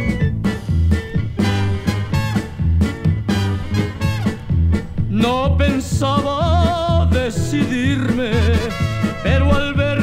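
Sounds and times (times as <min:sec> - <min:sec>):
mariachi band playing: 0:00.0 - 0:10.0.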